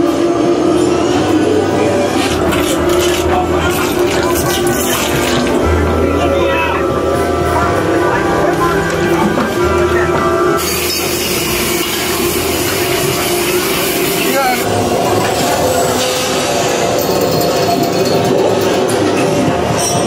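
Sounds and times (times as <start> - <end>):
haunted maze music: 0.0 - 20.0
spooky sound effects: 0.0 - 20.0
voices: 1.2 - 10.6.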